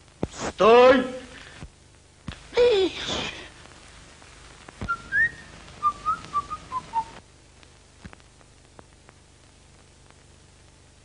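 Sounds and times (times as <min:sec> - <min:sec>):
person whistling a tune: 0:04.9 - 0:07.1.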